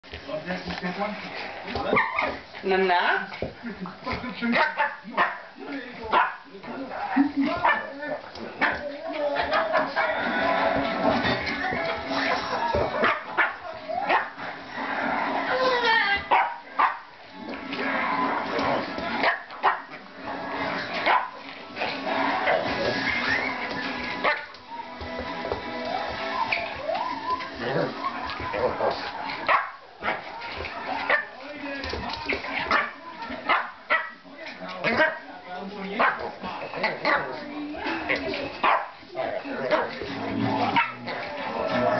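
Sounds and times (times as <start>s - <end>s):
dogs barking and yipping: 1.9s - 3.3s, 8.6s - 17.1s, 17.7s - 20.1s, 20.7s - 25.0s, 25.8s - 31.4s, 38.0s - 41.9s.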